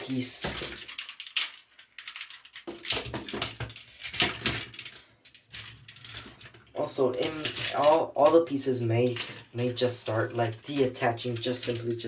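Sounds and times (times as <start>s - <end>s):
plastic toy parts clicking: 0.0s - 12.0s.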